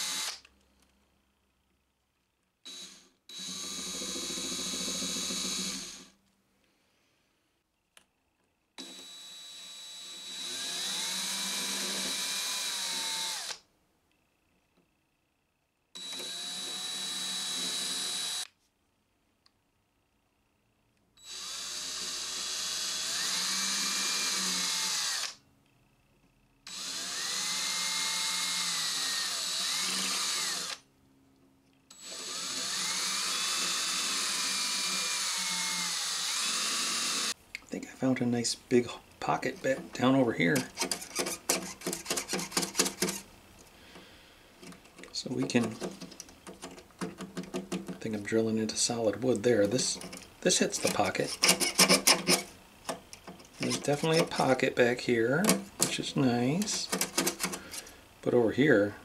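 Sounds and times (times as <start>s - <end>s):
small electric drill boring wood: 0.0s - 0.4s, 2.7s - 6.2s, 8.8s - 13.6s, 16.0s - 18.5s, 21.2s - 25.4s, 26.7s - 30.9s, 31.9s - 37.4s, 40.4s - 43.3s, 49.6s - 52.5s, 53.5s - 54.7s, 56.6s - 58.0s.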